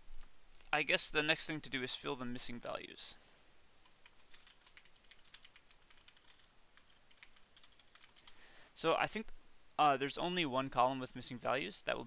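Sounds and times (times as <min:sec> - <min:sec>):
typing on computer keyboard: 0:03.8 - 0:08.4.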